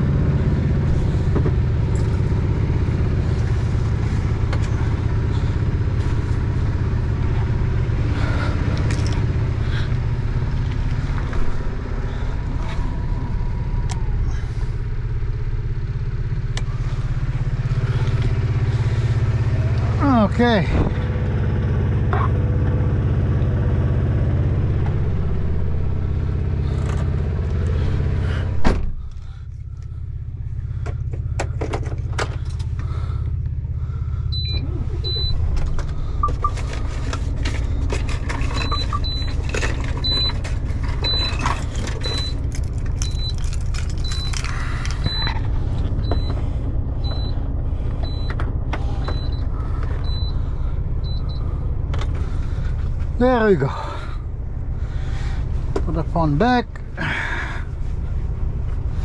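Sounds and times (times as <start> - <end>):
truck engine idling: 0.0 - 59.0.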